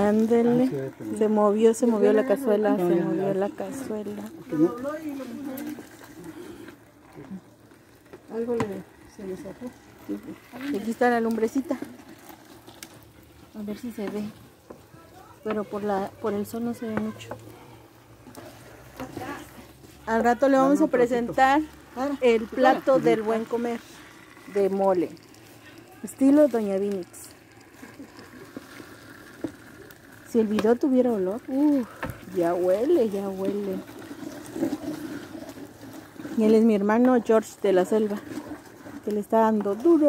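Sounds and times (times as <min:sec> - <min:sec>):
low steady outdoor hum: 0:00.0 - 0:40.0
paddle stirring thick paste: 0:00.0 - 0:40.0.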